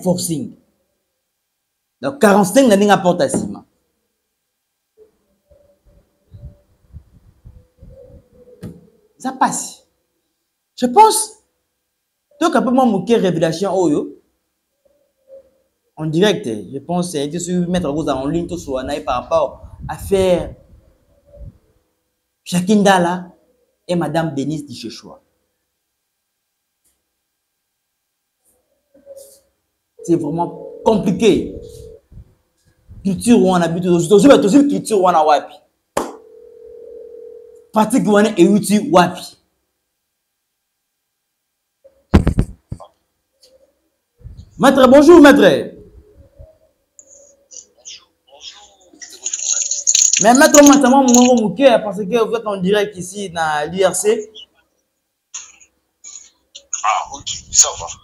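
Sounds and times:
microphone handling thumps: 0:06.4 - 0:08.9, 0:42.1 - 0:42.9
telephone ringback tone: 0:30.0 - 0:32.0, 0:36.2 - 0:37.7.

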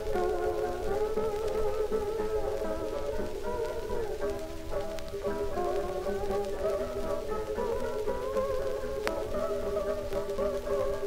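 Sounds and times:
plucked guitar accompaniment: 0:00.0 - 0:11.0
sliding steel guitar melody: 0:00.0 - 0:11.0.

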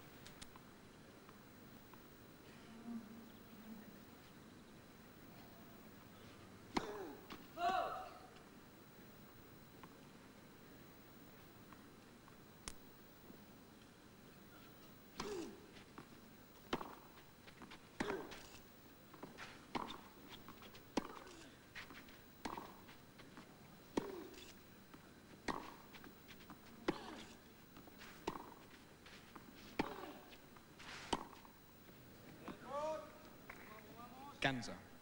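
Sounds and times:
tennis racket hitting ball: 0:29.7 - 0:30.2, 0:31.1 - 0:31.5.

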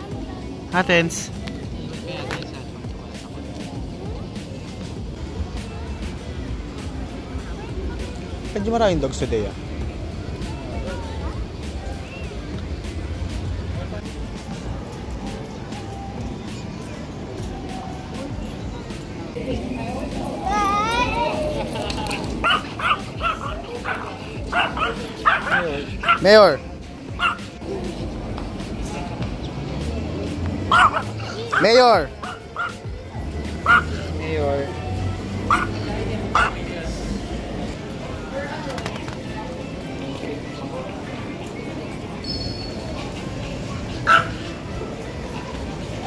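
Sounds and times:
steady background noise: 0:00.0 - 0:46.0
small dog yapping: 0:22.4 - 0:26.3, 0:27.2 - 0:27.4, 0:30.7 - 0:31.6, 0:33.6 - 0:34.0, 0:35.5 - 0:35.8, 0:44.1 - 0:44.4.

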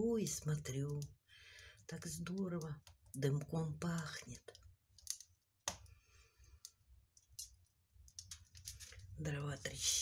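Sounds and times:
firewood crackling in a stove: 0:00.0 - 0:09.8.

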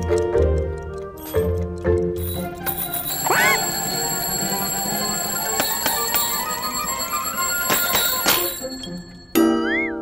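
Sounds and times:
light background music: 0:00.0 - 0:10.0
bell-like ringing: 0:02.2 - 0:09.8.

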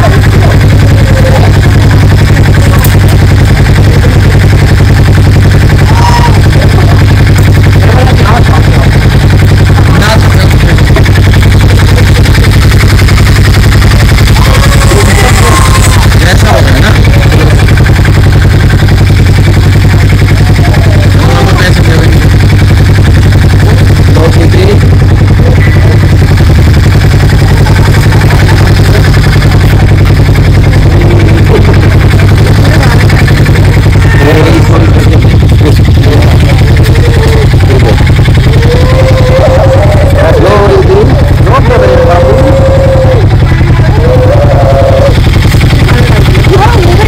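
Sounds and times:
motorcycle engine idling: 0:00.0 - 0:47.0.

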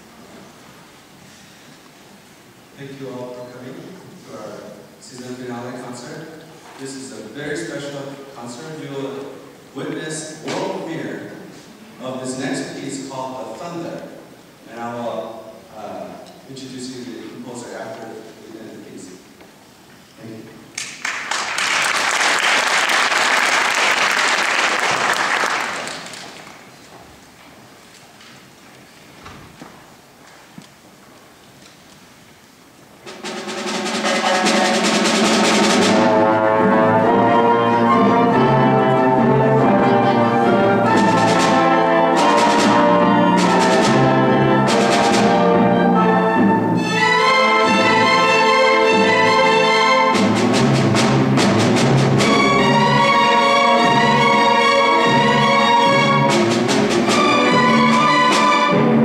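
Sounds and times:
audience applause: 0:21.0 - 0:26.7
sharp percussion strikes: 0:33.0 - 0:39.4, 0:40.5 - 0:45.8
orchestra playing: 0:33.0 - 0:59.0.

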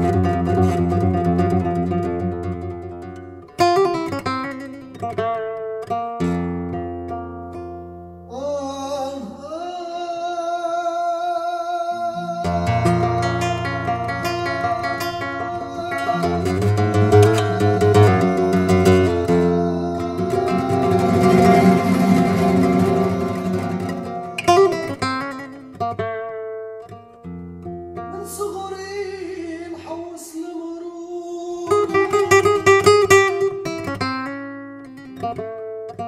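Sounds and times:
flamenco guitar playing: 0:00.0 - 0:08.4, 0:12.0 - 0:30.1, 0:31.2 - 0:36.0
person singing melismatic lines: 0:08.3 - 0:25.5.

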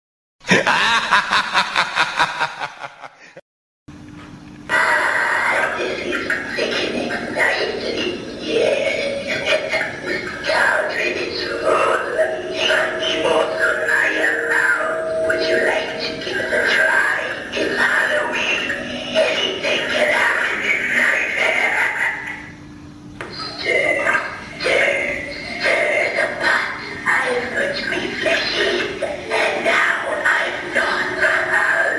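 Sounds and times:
faint steady hum: 0:03.9 - 0:31.9
recorded spooky voice speaking: 0:04.7 - 0:22.5, 0:23.3 - 0:31.9.

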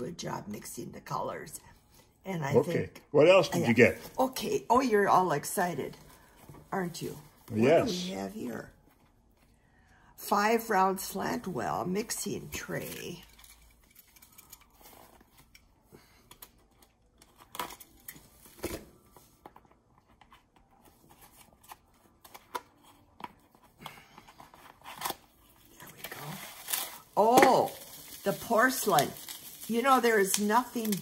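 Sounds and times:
person speaking: 0:02.4 - 0:04.0, 0:07.5 - 0:08.6.

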